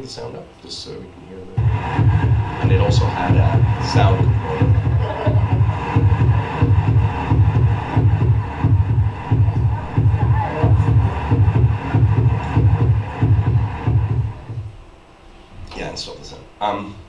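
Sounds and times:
loud low beat: 1.6s - 15.0s.

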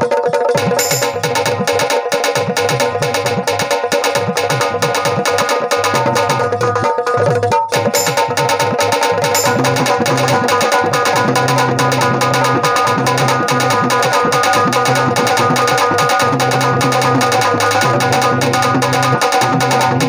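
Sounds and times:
fast drumming: 0.0s - 20.0s
plucked keyed banjo: 0.0s - 20.0s.

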